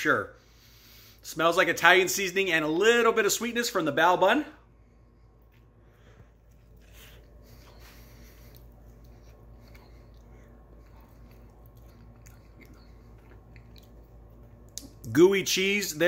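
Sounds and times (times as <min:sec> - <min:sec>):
faint chewing: 0:05.4 - 0:15.1
mouth clicks and smacks: 0:08.4 - 0:15.1.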